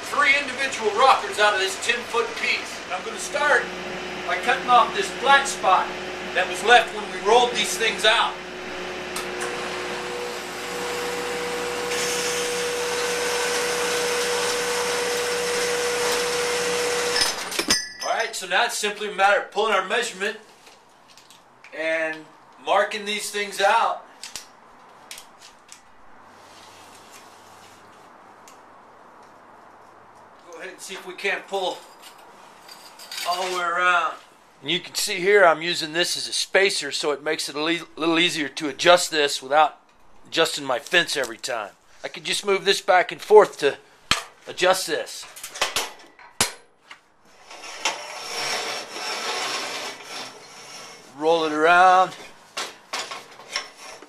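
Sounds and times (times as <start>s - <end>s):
sharp metal clank: 17.2s - 18.2s
steel tubing scraping in vise: 47.3s - 51.2s, 53.4s - 54.0s.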